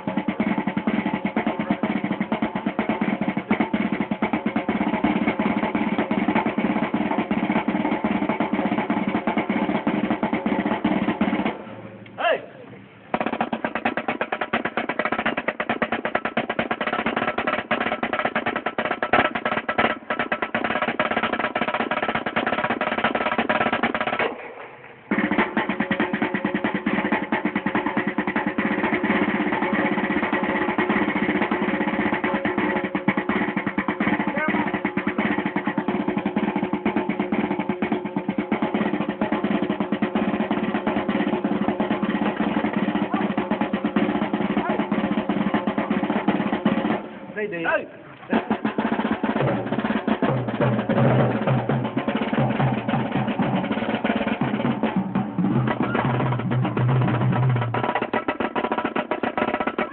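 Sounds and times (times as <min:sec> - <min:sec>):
marching snare drum rolls: 0:00.0 - 0:59.9.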